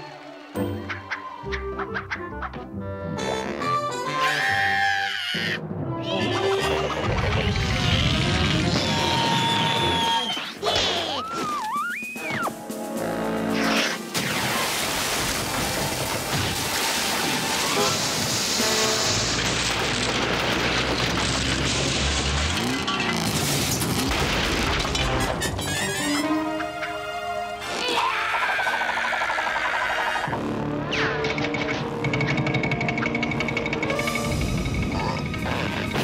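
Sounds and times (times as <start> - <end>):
cartoon music: 0.6 - 12.8
water spraying from a hose: 12.6 - 19.5.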